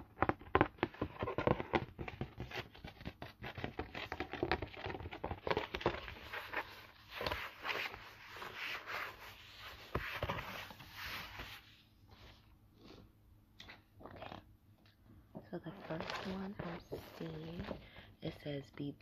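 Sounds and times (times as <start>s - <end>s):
cardboard sheet being handled: 0.9s - 12.4s, 15.7s - 17.8s.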